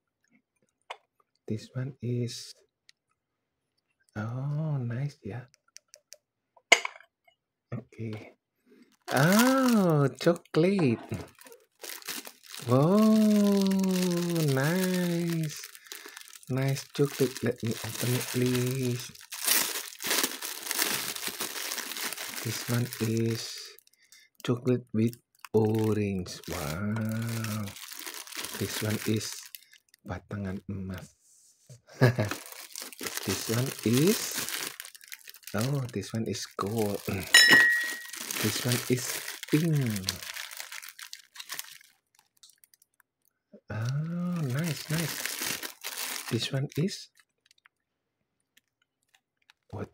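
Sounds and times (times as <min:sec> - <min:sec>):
cellophane bag crinkling: 0:08.8 - 0:23.9, 0:25.0 - 0:30.0, 0:32.0 - 0:43.3, 0:43.9 - 0:47.7.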